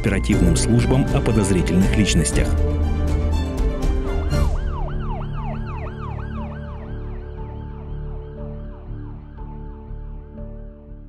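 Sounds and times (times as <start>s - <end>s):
steady musical drone: 0.0s - 10.8s
emergency siren yelping: 3.9s - 9.6s.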